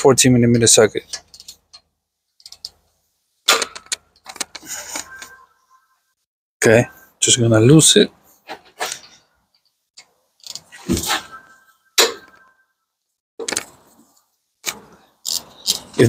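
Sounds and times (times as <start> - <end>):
wrench clicking and clunking: 1.1 - 2.8, 3.5 - 4.7, 10.0 - 10.7, 14.6 - 15.9
ringing metal clank: 11.0 - 12.7.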